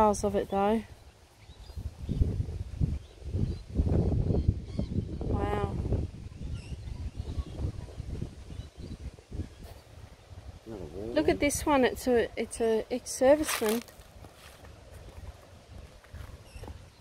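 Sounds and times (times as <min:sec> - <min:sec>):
wind buffeting microphone: 0:01.5 - 0:17.0.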